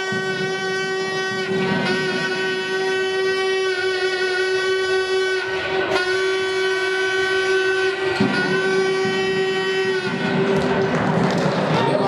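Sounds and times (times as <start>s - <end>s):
steady horn-like tone: 0.0s - 11.4s.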